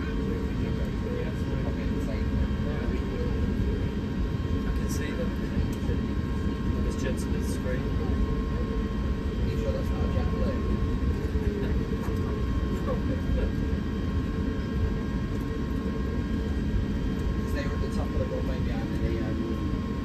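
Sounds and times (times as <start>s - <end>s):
airliner cabin engine rumble: 0.0s - 20.0s.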